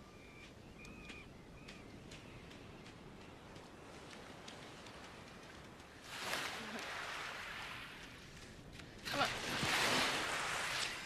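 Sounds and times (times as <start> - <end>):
seawater washing at shoreline: 2.0 - 11.0.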